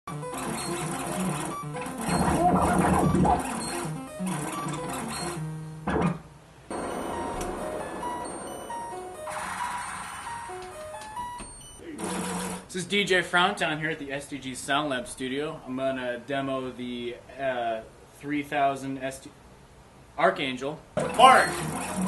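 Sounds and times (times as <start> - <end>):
sequenced synthesizer music: 0.1 - 5.5, 6.7 - 11.8.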